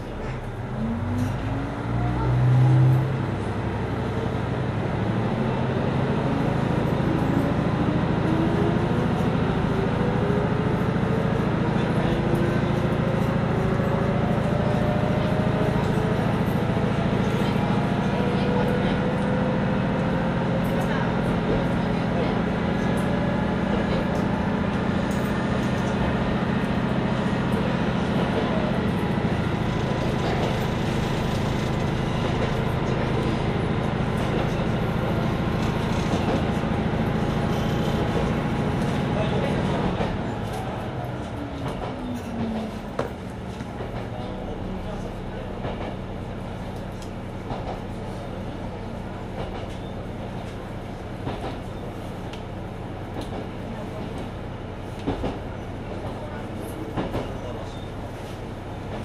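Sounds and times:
diesel railcar engine: 0.0 - 59.0
train running noise: 0.0 - 59.0
rail-joint clicks: 46.8 - 47.9, 49.4 - 50.5, 53.1 - 54.3, 55.0 - 55.4, 56.9 - 57.8.

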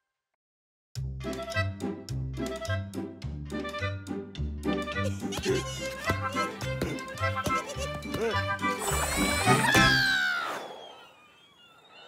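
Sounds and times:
cartoon whistle falling in pitch: 8.8 - 12.0
faint rising whistle: 9.9 - 12.0.

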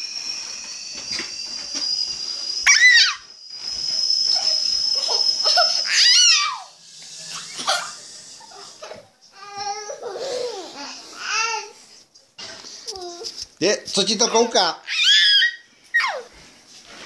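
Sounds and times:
thin high-pitched tone: 0.0 - 9.0
child squealing: 2.6 - 3.2, 4.2 - 6.8, 7.4 - 8.8, 14.2 - 16.3
child giggling: 5.0 - 6.3, 7.5 - 9.0.

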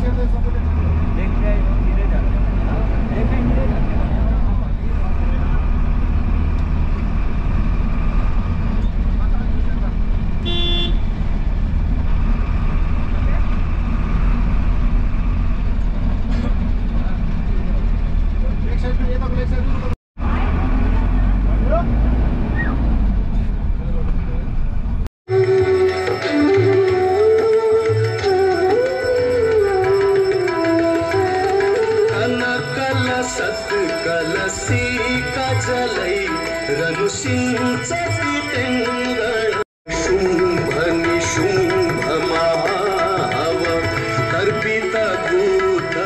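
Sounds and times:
bus engine and road rumble: 0.0 - 25.1
short horn toot: 10.4 - 11.0.

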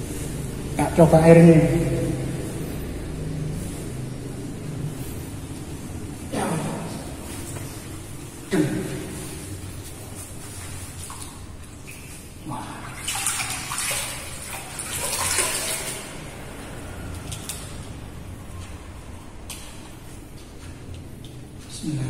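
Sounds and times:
hands splashing water: 10.2 - 16.4.

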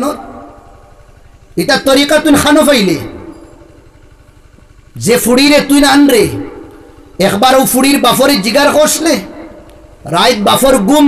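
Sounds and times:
man's amplified speech: 0.0 - 0.6, 1.6 - 3.3, 5.0 - 11.0.

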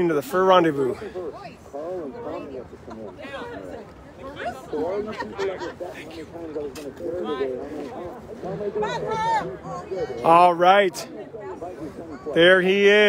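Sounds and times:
chatter of voices: 0.0 - 13.0.

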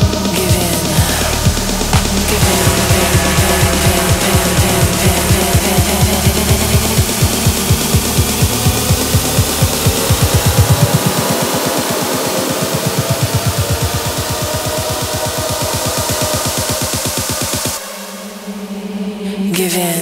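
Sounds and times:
deep bass: 0.0 - 16.0
drum roll: 0.0 - 17.7
steady kick drum: 0.0 - 17.8
techno music: 0.0 - 17.8.

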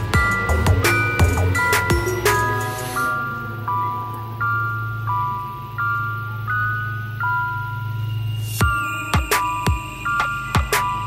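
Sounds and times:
bell-like mallet melody: 0.0 - 11.0
steady low hum: 0.0 - 11.0.

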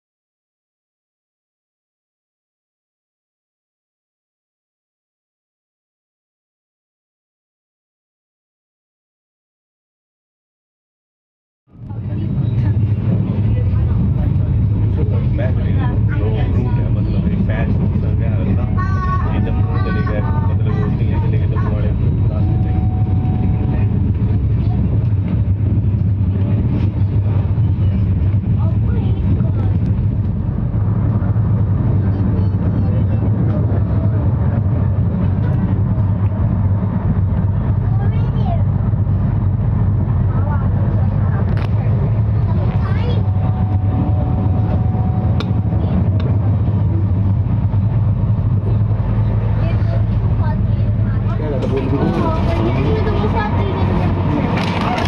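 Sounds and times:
faint passengers' voices: 11.7 - 55.0
train rumbling: 11.7 - 55.0.

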